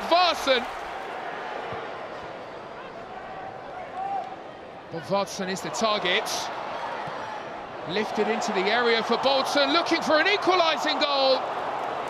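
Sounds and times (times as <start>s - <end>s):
stadium crowd hum: 0.0s - 12.0s.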